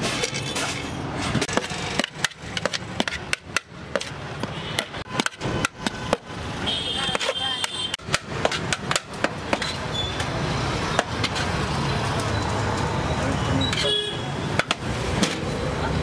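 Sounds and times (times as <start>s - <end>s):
roadside traffic noise: 0.0s - 16.0s.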